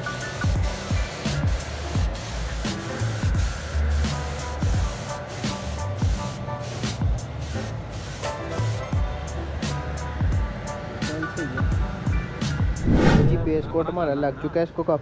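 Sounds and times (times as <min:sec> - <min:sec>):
paint spray gun hissing: 0:00.0 - 0:08.8
background music with steady beat: 0:00.0 - 0:12.8.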